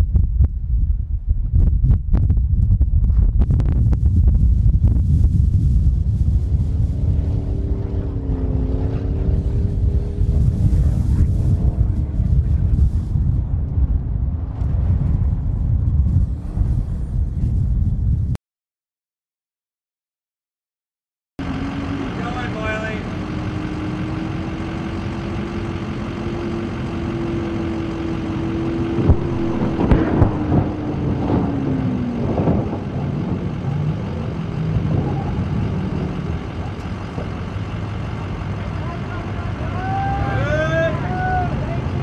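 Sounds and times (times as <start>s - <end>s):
vehicle engine humming: 0.0s - 18.2s, 21.4s - 42.0s.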